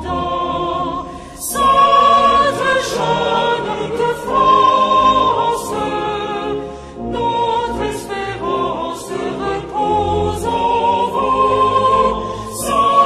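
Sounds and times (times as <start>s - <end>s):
choir singing a slow hymn: 0.0s - 13.0s.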